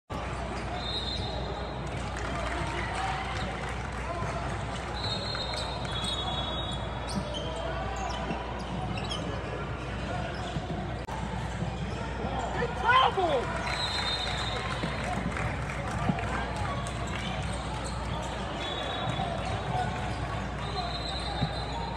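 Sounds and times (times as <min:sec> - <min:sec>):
din of voices in gym: 0:00.1 - 0:21.9
sneaker squeaks: 0:00.3 - 0:02.0, 0:04.8 - 0:15.3, 0:16.0 - 0:21.9.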